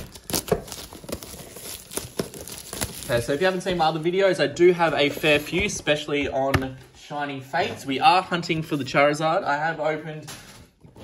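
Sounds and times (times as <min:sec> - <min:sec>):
plastic wrap crinkling: 0:00.0 - 0:04.2.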